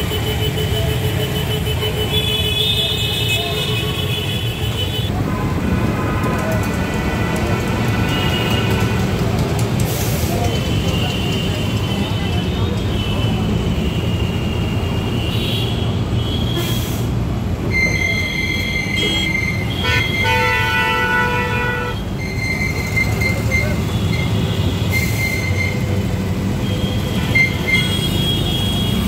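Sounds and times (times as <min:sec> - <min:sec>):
engine and road rumble: 0:00.0 - 0:29.0.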